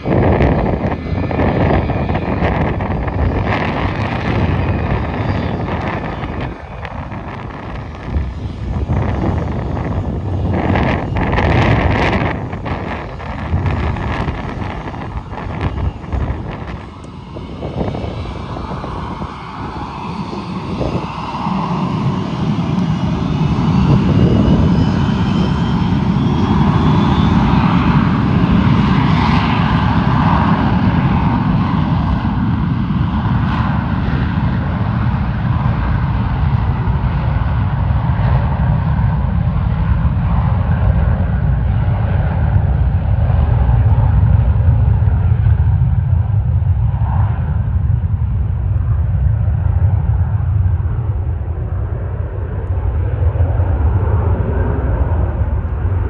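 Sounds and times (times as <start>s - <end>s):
jet engines at takeoff power: 0.0s - 56.0s.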